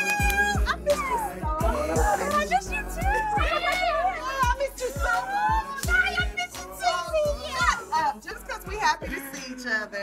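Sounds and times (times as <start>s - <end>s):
people greeting excitedly: 0.0s - 9.8s
background music with low beat: 0.0s - 10.0s.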